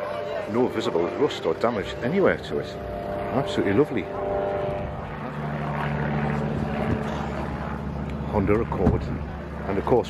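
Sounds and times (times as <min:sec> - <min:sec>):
motor engine running: 0:00.0 - 0:10.0.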